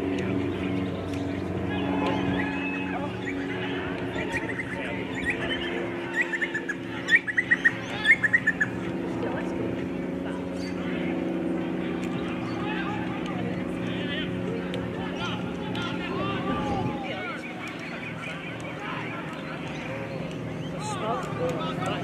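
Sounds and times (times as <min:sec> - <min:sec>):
distant voices: 0:00.0 - 0:22.0
steady low hum: 0:00.0 - 0:22.0.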